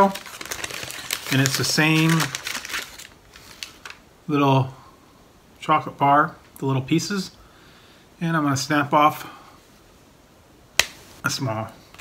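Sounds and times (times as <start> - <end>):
foil wrapper crinkling: 0.0 - 4.0.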